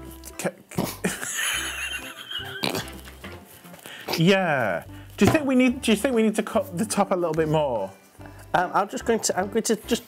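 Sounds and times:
gloved hands handling fruit: 0.0s - 10.0s.

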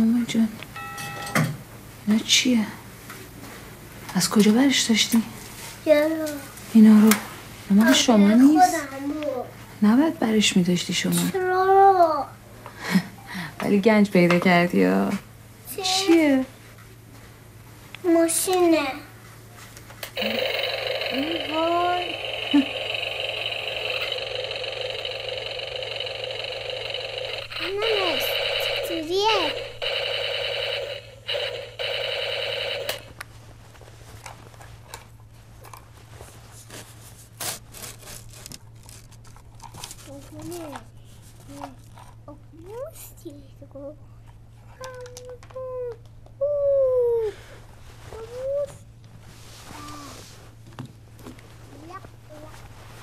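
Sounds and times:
electronic buzzing tone: 20.2s - 33.2s.

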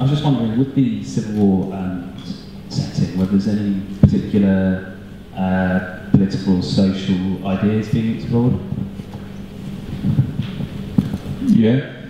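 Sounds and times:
indistinct low murmurs: 0.0s - 12.0s
low electrical hum: 0.0s - 12.0s.

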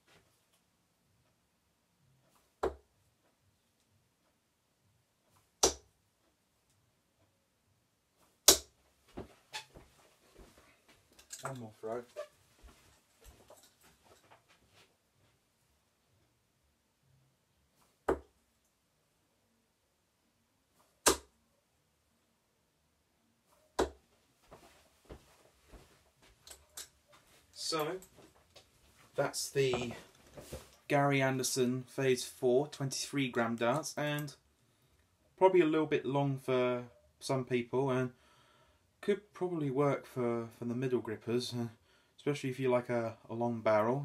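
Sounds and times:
darts thudding into dartboard: 2.6s - 2.9s, 5.6s - 5.9s, 8.4s - 8.7s, 18.0s - 18.3s, 21.0s - 21.3s, 23.8s - 24.0s.

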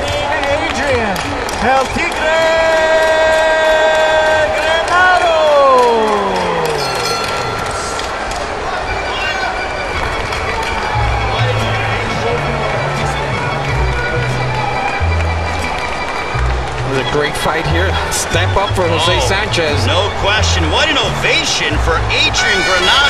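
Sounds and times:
ring announcer calling out: 0.0s - 10.0s, 10.7s - 23.0s
music with deep bass line: 10.9s - 22.4s.

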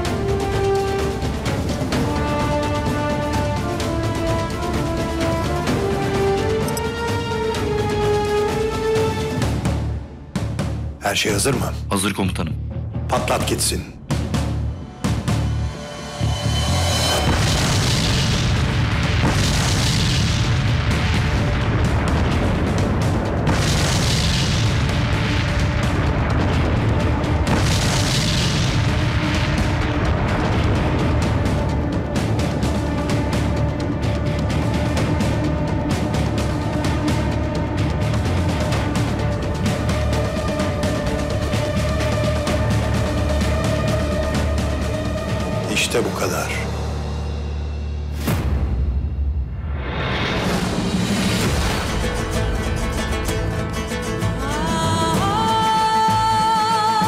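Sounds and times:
dramatic film music: 0.0s - 57.0s
explosions: 17.1s - 31.6s.

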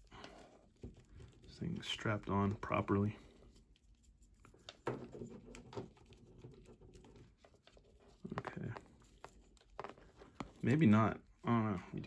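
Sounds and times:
hands rustling plastic figure: 0.0s - 12.0s.

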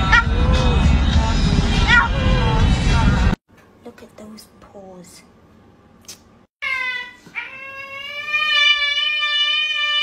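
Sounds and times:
cat meowing loudly: 6.6s - 10.0s.

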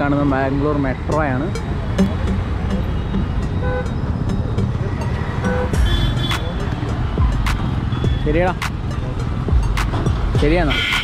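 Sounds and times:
road traffic engines and tyres: 0.0s - 11.0s
vehicle horn beeps: 3.0s - 4.0s, 5.4s - 6.5s, 10.7s - 11.0s.

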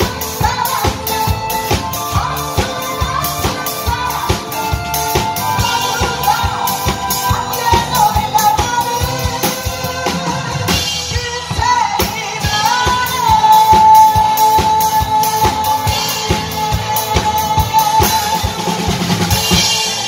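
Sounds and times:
electric guitar: 0.0s - 20.0s
person singing into microphone: 0.0s - 20.0s
steady drum beat: 0.0s - 20.0s.

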